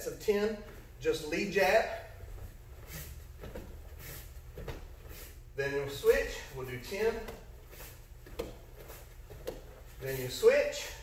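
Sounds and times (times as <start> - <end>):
man speaking: 0.0 - 2.2, 5.6 - 7.5, 10.0 - 11.0.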